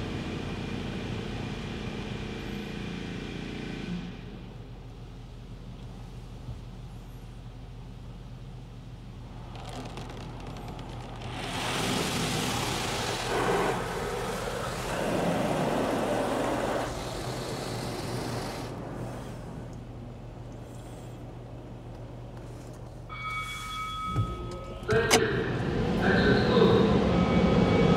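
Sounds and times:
steady low hum: 4.0s - 27.7s
water spraying on car: 9.4s - 20.0s
cloth brushes rushing against car: 11.0s - 19.6s.

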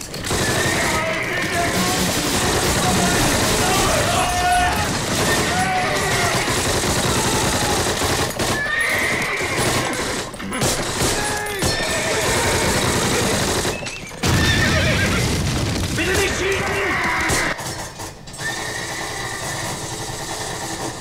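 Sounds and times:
battle noise: 0.0s - 17.8s
horses neighing: 0.3s - 15.4s, 16.0s - 17.6s, 18.4s - 19.9s.

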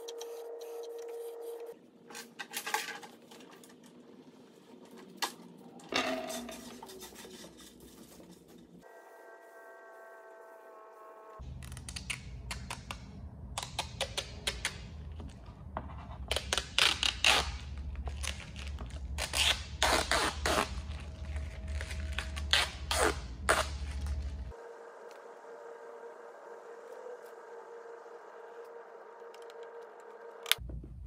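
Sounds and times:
steady hum: 3.3s - 31.0s.

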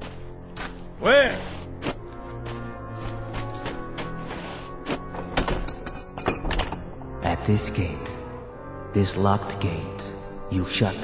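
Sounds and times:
dramatic music underscore: 0.0s - 11.0s.

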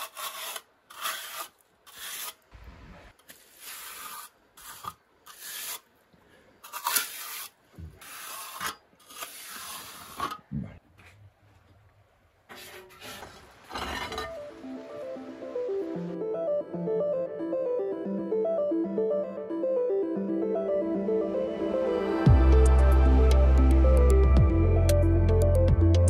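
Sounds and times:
trowel scraping wet render: 0.0s - 2.4s, 3.2s - 5.9s, 6.6s - 10.4s
background music: 14.3s - 26.0s.

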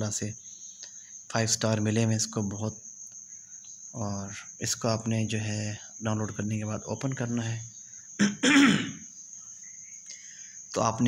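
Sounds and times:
faint high-pitched whine: 0.0s - 11.0s
man clearing throat: 8.2s - 9.0s.

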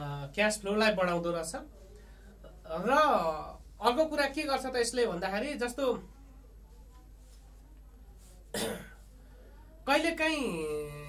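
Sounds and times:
man coughing: 8.6s - 8.9s.

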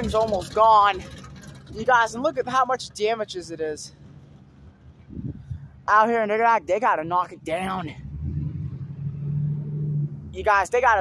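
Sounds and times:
engine humming: 0.0s - 5.9s, 6.6s - 11.0s.

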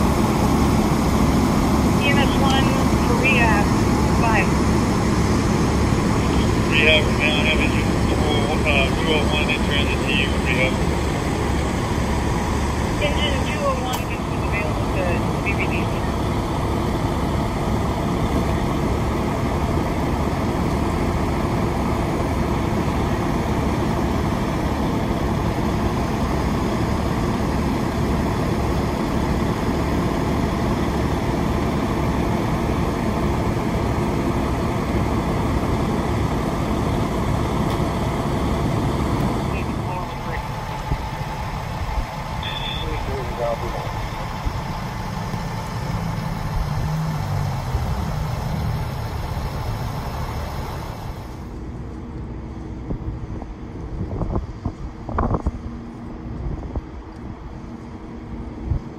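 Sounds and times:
diesel engines droning: 0.0s - 58.9s.

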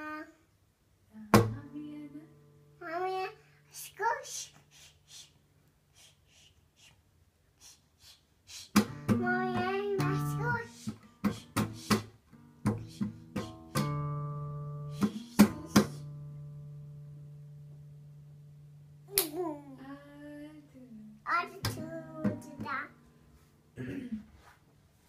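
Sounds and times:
child singing: 1.3s - 4.9s, 8.9s - 12.0s, 19.2s - 23.0s.

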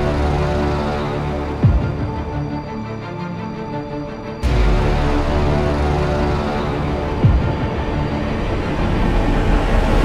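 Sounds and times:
low rumble and drone: 4.1s - 10.0s.

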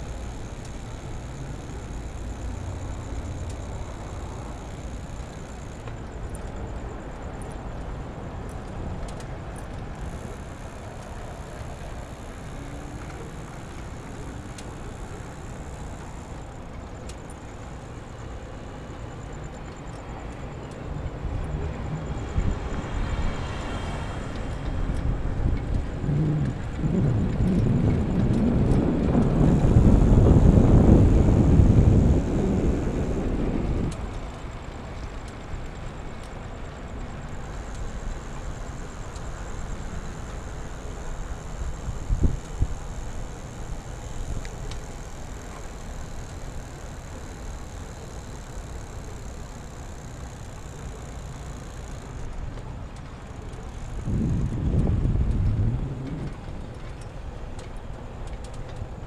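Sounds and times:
rush of tyres and air: 0.0s - 59.0s
wind rumbling on microphone: 0.0s - 59.0s.

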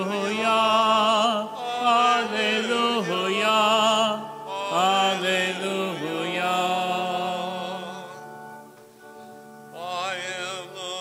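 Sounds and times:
person singing long wavering notes: 0.0s - 8.5s.

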